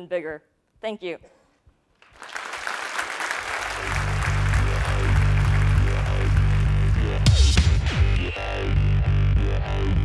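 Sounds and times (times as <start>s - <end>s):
audience applause: 2.0s - 7.4s
electronic music with heavy bass: 3.7s - 10.0s.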